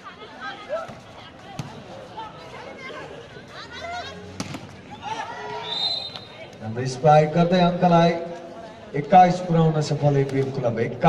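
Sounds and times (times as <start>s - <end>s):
players and spectators shouting: 0.0s - 9.6s
high referee's whistle: 5.6s - 6.5s.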